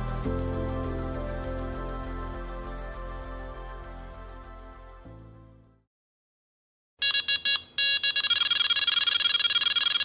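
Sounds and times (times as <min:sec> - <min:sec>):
bite alarm beeping and warbling: 0:07.0 - 0:10.0.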